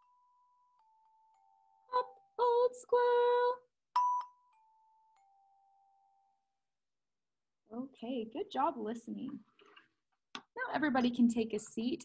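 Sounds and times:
glockenspiel notes ringing: 0:04.0 - 0:06.5.

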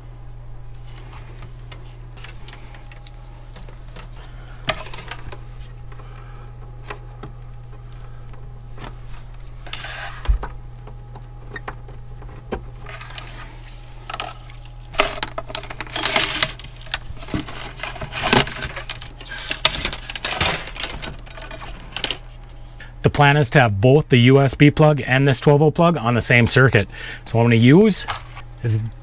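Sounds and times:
hands handling wire and parts: 0:00.7 - 0:05.8, 0:08.3 - 0:22.8.

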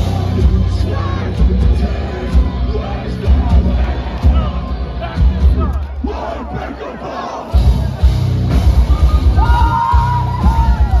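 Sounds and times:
fast bass drum beats: 0:00.0 - 0:05.8, 0:07.5 - 0:11.0
metal band playing live: 0:00.0 - 0:06.8, 0:07.4 - 0:11.0
crowd shouting: 0:00.0 - 0:11.0.

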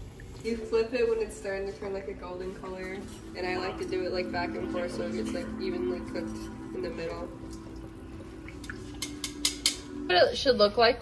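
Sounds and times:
metal tongs clicking: 0:09.0 - 0:09.9.

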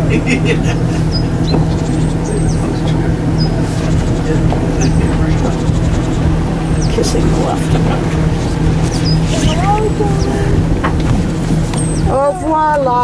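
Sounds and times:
boat engine running: 0:00.0 - 0:13.0.

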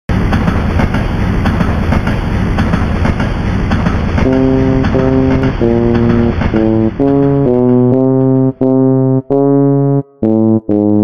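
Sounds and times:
train clattering on rails: 0:00.1 - 0:08.6.

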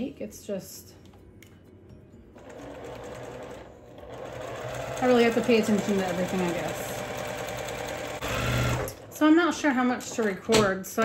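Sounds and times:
electric sewing machine stitching: 0:02.4 - 0:10.4.

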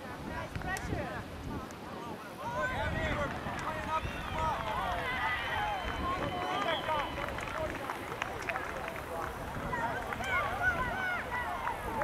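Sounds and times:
people shouting and calling out: 0:01.9 - 0:12.0.

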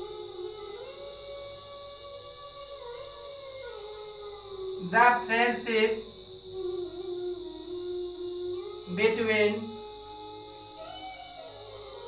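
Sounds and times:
faint high-pitched whine: 0:00.0 - 0:12.0.

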